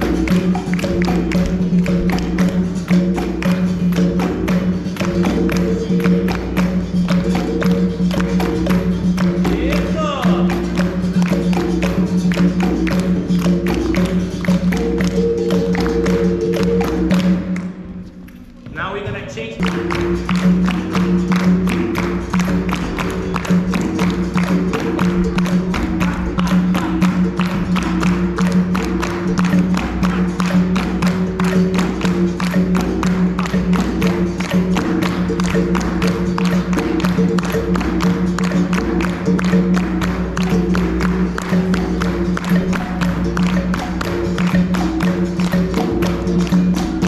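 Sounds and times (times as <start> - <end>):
hand clapping: 0.0 - 18.0, 19.6 - 47.0
hand drum: 0.0 - 18.1, 19.6 - 47.0.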